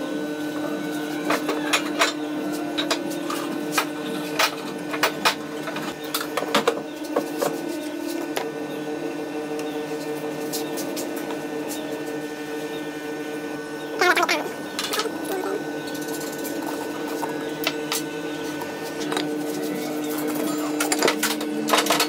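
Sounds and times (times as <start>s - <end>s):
steady mechanical hum: 0.0s - 22.0s.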